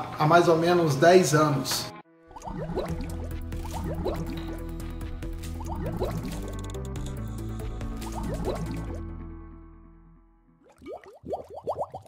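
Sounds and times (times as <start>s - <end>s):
rising bubbly bloops: 2.3s - 4.7s, 5.5s - 6.7s, 8.0s - 9.0s, 10.6s - 12.0s
intro music with low notes: 2.4s - 10.6s.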